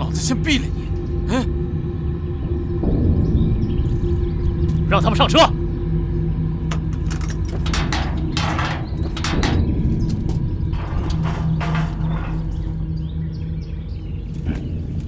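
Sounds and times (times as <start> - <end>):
truck engine idling: 3.9 - 15.0
clattering in wooden cargo bed: 6.7 - 13.4.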